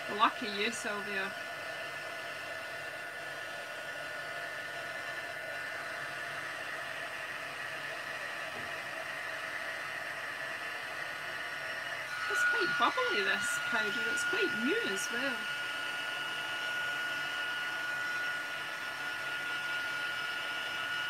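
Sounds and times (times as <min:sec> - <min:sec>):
heat gun blowing: 0:00.0 - 0:21.0.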